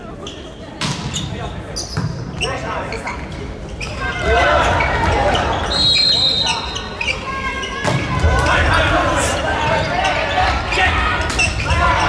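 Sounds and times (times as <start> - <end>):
players shouting: 3.9 - 12.0.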